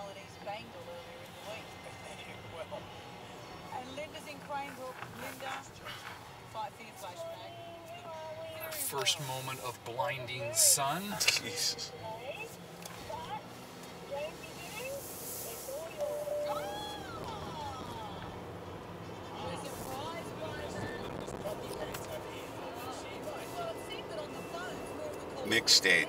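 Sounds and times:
car cabin road noise: 0.0 - 26.0
music from car radio: 0.0 - 26.0
voice on car radio: 8.5 - 12.5, 25.4 - 26.0.

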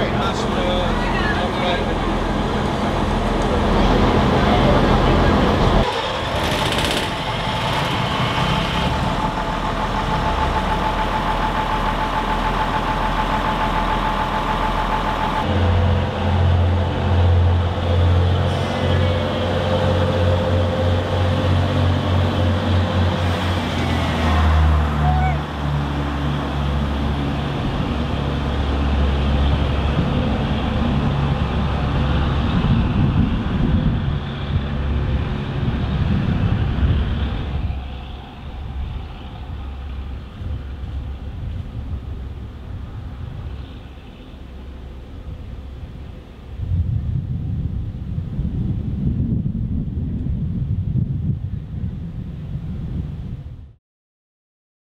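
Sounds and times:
railcar diesel engine droning: 0.0 - 50.5.

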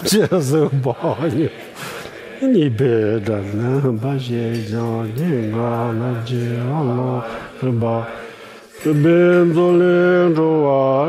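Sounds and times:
man chanting long held notes: 2.4 - 11.0.

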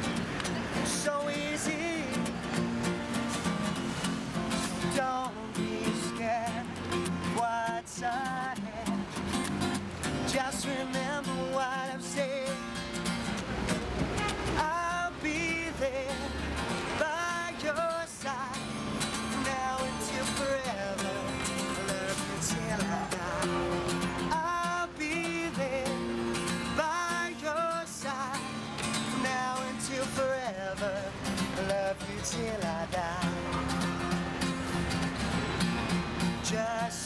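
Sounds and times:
acoustic guitar strumming: 0.0 - 37.0
man singing: 0.6 - 3.0, 4.3 - 13.3, 14.5 - 34.8, 36.2 - 37.0.

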